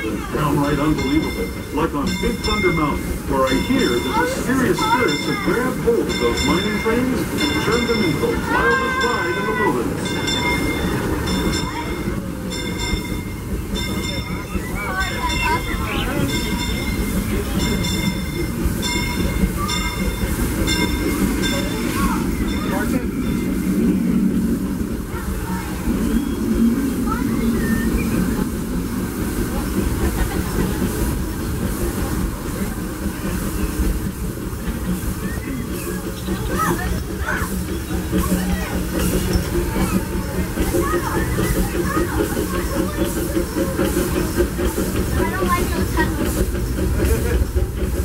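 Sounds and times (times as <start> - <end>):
faint ringing from wheels: 0.0 - 29.9
train rumbling: 0.0 - 48.0
wheels clicking over rails: 0.0 - 48.0.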